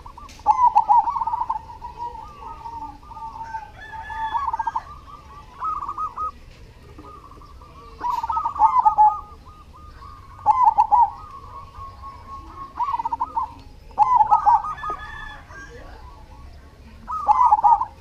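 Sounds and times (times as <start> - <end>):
dove cooing: 0.0 - 18.0.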